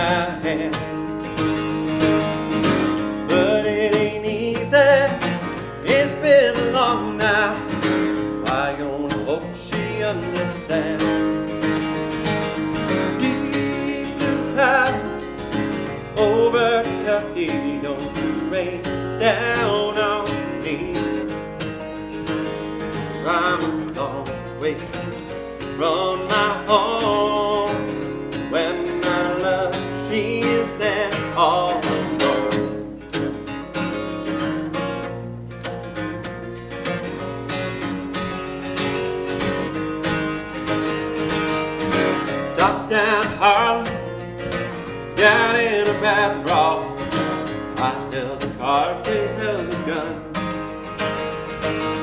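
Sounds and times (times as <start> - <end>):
man singing: 0.0 - 1.6, 2.6 - 11.9, 12.6 - 21.5, 22.9 - 33.0, 41.9 - 50.7
acoustic guitar strumming: 0.0 - 52.0.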